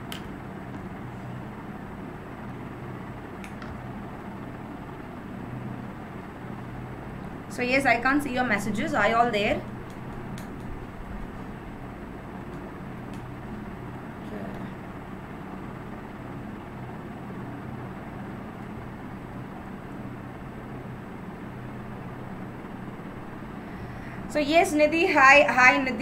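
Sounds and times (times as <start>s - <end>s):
low hum: 0.0s - 26.0s.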